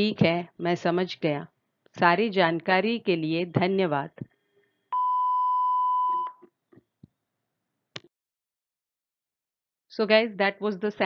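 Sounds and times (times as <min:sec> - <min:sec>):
electronic beep: 0:05.0 - 0:06.4.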